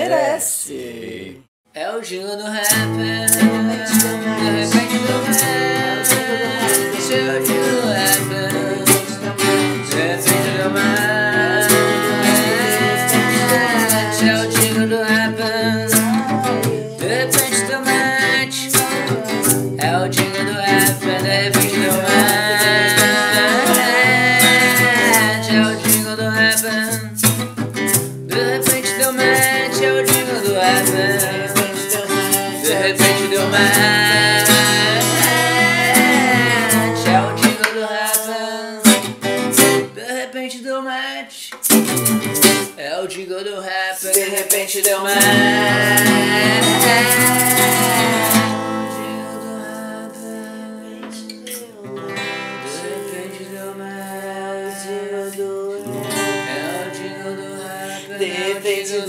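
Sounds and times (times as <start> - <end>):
person singing: 0.0 - 27.3, 28.3 - 59.0
acoustic guitar strummed: 2.5 - 40.1, 41.5 - 43.0, 44.0 - 59.0.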